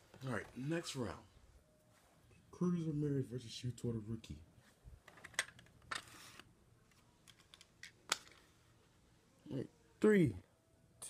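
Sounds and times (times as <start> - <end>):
toy car scuffing on paper: 5.9 - 6.5.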